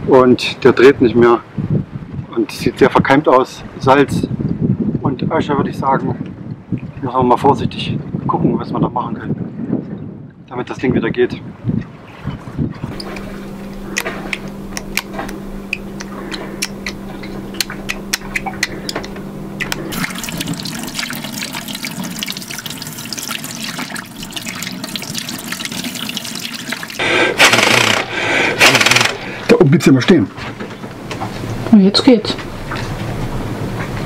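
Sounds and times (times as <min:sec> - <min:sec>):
steady hum: 0:12.7 - 0:34.0
tap water running into sink: 0:12.9 - 0:27.0
small clicks of anemometer cups: 0:13.0 - 0:19.8
loud hissing rush: 0:27.0 - 0:29.6.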